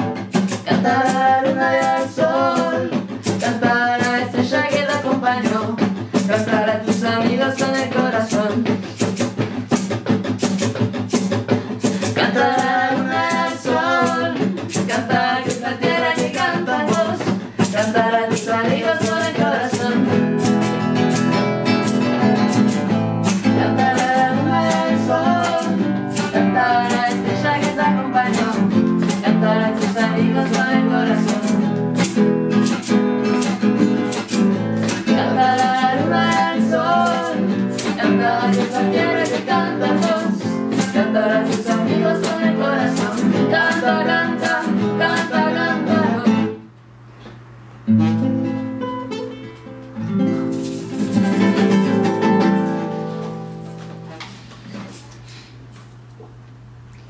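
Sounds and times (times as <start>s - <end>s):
person singing: 0.0s - 8.8s, 11.7s - 20.5s, 23.4s - 32.1s, 34.8s - 46.6s, 51.0s - 52.8s
acoustic guitar strumming: 0.0s - 46.8s, 47.8s - 55.0s
egg shaker: 50.4s - 52.9s.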